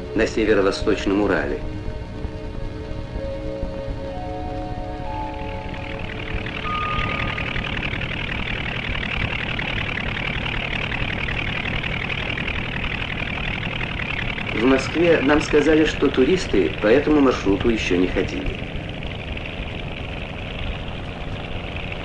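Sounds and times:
helicopter hovering overhead: 0.0s - 22.0s.

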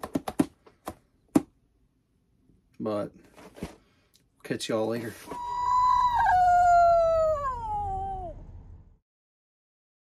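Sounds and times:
dog howling: 5.4s - 8.5s.

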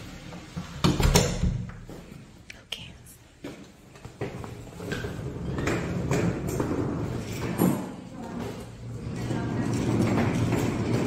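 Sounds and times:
suitcase wheels rumbling on tile: 3.6s - 11.0s.

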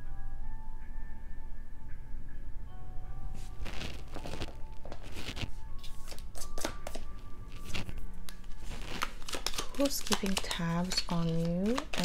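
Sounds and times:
cards being shuffled: 3.6s - 12.0s.

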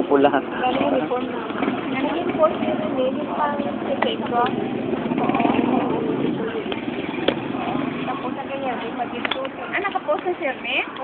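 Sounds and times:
people talking: 0.0s - 7.0s, 7.6s - 11.0s
street traffic: 0.0s - 11.0s.

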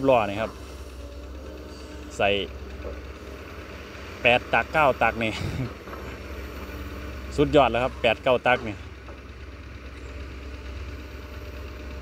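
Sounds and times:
excavator diesel engine running: 0.0s - 12.0s.

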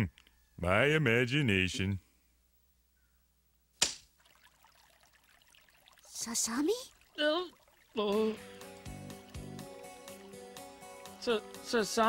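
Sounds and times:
faint water trickle: 4.1s - 11.4s.

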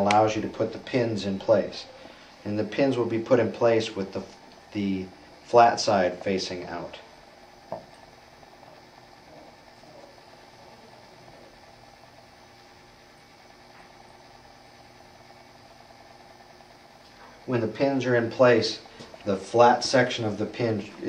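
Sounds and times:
faint room hum: 0.0s - 21.0s.

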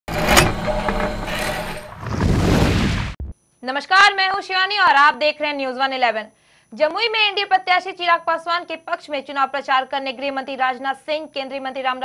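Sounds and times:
rumble: 1.1s - 3.3s.

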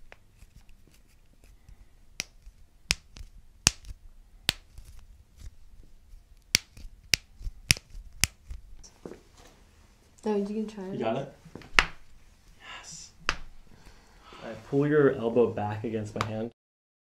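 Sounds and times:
knuckles cracking: 0.0s - 5.6s, 6.4s - 8.9s.

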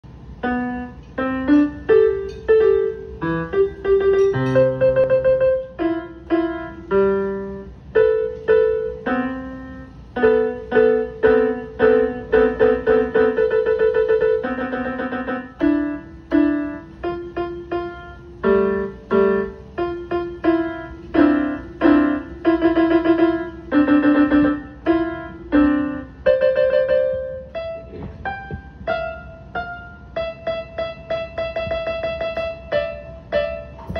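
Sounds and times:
piano melody: 0.0s - 33.9s.

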